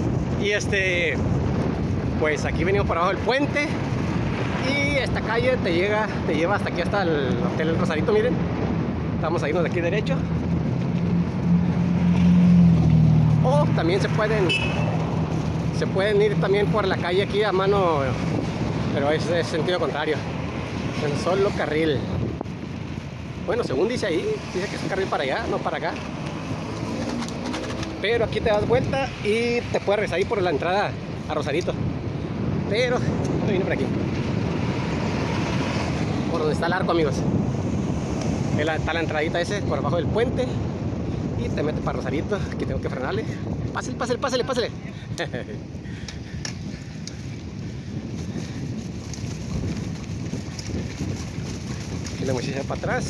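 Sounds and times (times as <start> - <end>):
bicycle tyres rolling on pavement: 0.0 - 53.0
wind while cycling: 0.0 - 53.0.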